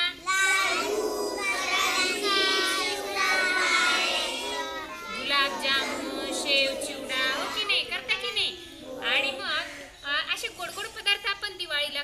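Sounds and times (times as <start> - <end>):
children singing in unison: 0.2 - 9.8.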